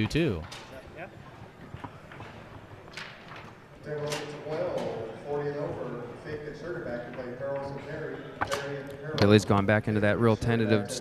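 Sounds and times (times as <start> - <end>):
man talking: 0.0 - 0.5, 3.8 - 11.0.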